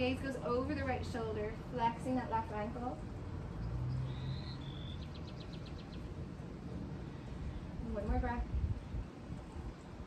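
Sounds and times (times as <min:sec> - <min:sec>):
bird singing whistled notes: 0:03.6 - 0:06.1.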